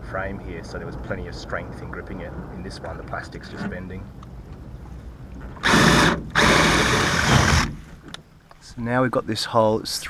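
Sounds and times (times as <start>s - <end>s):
cordless drill boring into metal: 5.6s - 7.7s.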